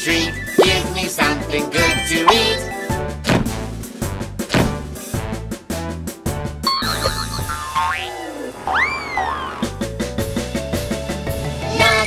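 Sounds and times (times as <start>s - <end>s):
cartoon boing swoop: 7.1s - 9.7s.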